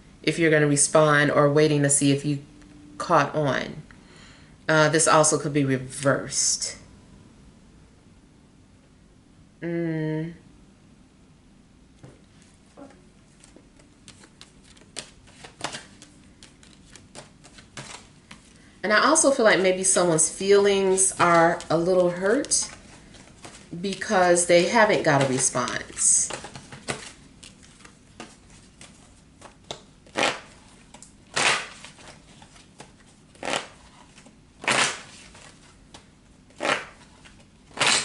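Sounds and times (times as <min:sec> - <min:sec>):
cards being shuffled: 0:13.3 - 0:18.6, 0:20.9 - 0:24.2, 0:25.0 - 0:38.0.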